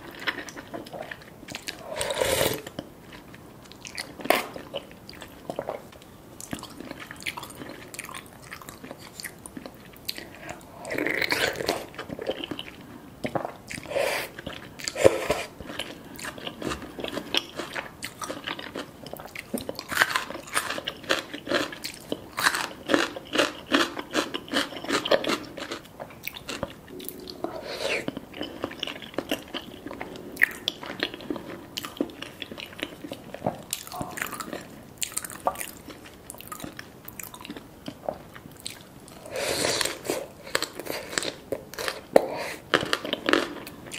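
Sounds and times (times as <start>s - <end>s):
close chewing and eating: 0.0s - 43.9s.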